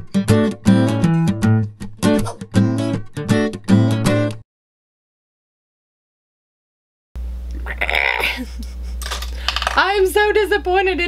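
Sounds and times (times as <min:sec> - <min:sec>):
low electrical hum: 0:07.2 - 0:11.0
small hard objects clinking: 0:09.0 - 0:09.9
woman speaking: 0:09.5 - 0:11.0.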